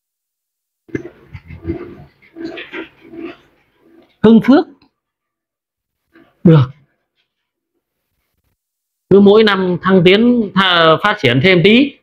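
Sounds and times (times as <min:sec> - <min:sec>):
people talking: 0:04.2 - 0:04.8, 0:09.1 - 0:12.0.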